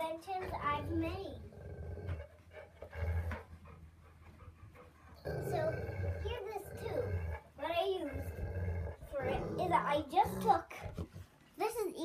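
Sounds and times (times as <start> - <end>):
large dog panting: 2.0 - 11.3.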